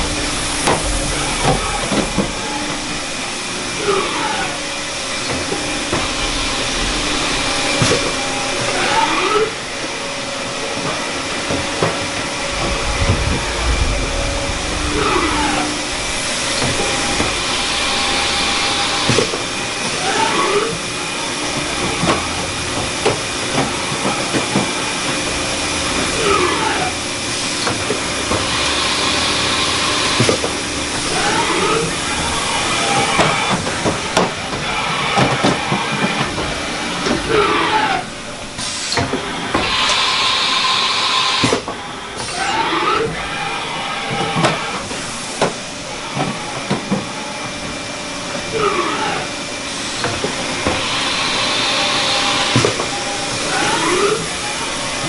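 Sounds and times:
faint hum tones: 0:00.0 - 0:20.0
machine whine gliding: 0:00.0 - 0:38.6
steady hiss: 0:11.7 - 0:20.0.

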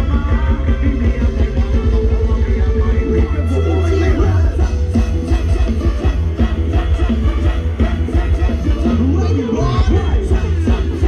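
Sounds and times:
live band playing dance music: 0:00.0 - 0:11.0.

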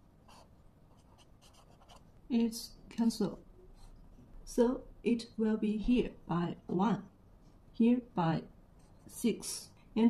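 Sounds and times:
marker writing on paper: 0:00.3 - 0:02.0.

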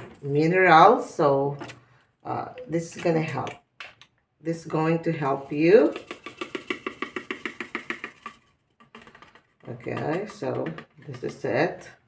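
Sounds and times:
rapid tapping of sachet: 0:05.8 - 0:11.4.

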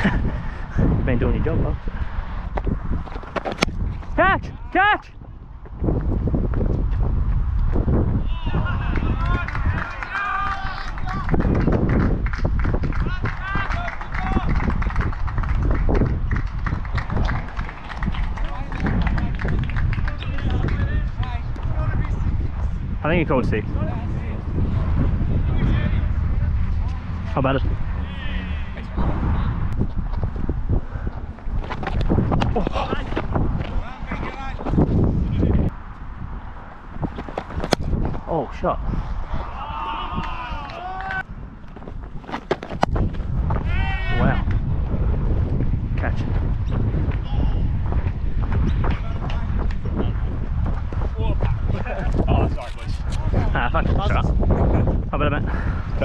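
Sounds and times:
wind rumbling on microphone: 0:00.0 - 0:56.0
players shouting: 0:08.2 - 0:11.4, 0:39.3 - 0:41.3, 0:43.6 - 0:44.5.

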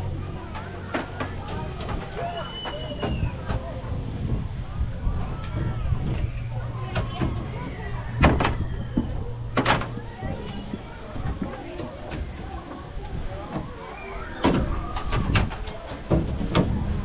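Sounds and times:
amusement ride machinery humming: 0:00.0 - 0:17.0
clicks and clunks: 0:00.4 - 0:03.8, 0:05.4 - 0:13.8, 0:14.4 - 0:17.0.

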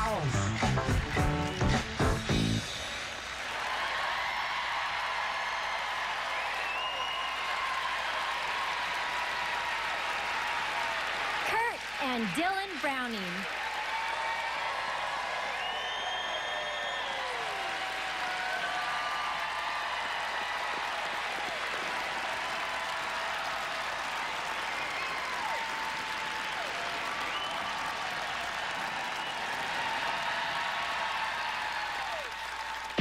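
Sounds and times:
audience applauding: 0:00.0 - 0:33.0
crowd cheering: 0:00.0 - 0:33.0.

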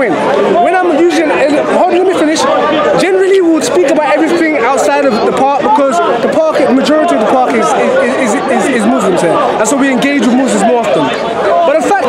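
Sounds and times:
men arguing: 0:00.0 - 0:12.0.

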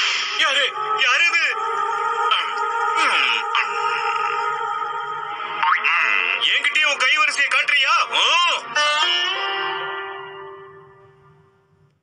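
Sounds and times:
cartoon music: 0:05.6 - 0:10.6.

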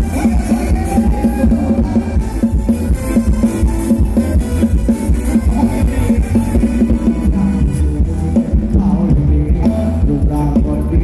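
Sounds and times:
live band dance music: 0:00.0 - 0:11.0.

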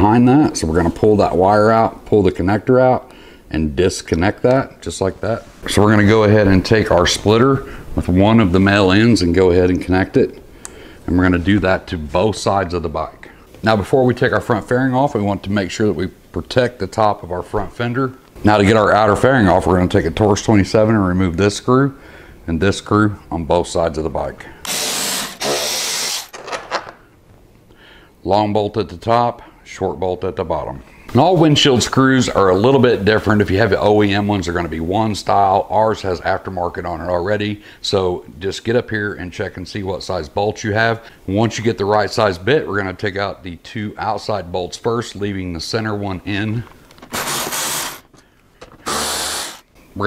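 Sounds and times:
power driver spinning screw: 0:24.7 - 0:26.3, 0:47.1 - 0:48.0, 0:48.8 - 0:49.6.

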